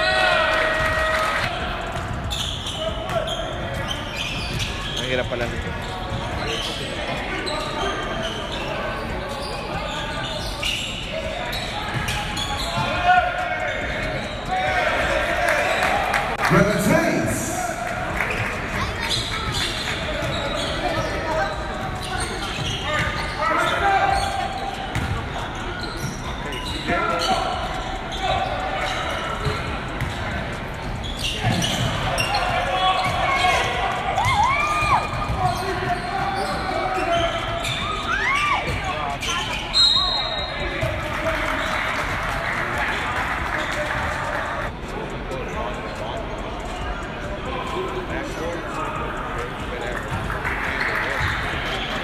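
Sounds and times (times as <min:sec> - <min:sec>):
indistinct voices in a hall: 0:00.0 - 0:52.0
sneakers squeaking: 0:00.8 - 0:44.7, 0:48.2 - 0:52.0.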